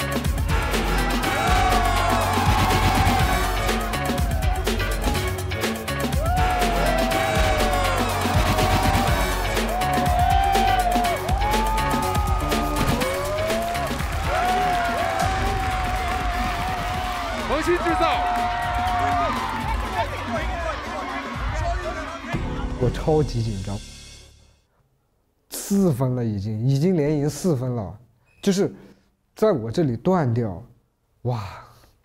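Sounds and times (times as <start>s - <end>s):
battle music with heavy bass: 0.0s - 22.8s.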